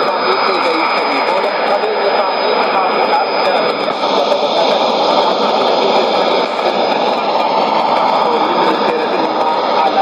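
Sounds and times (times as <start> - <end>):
radio jamming white noise hiss: 0.0 - 10.0.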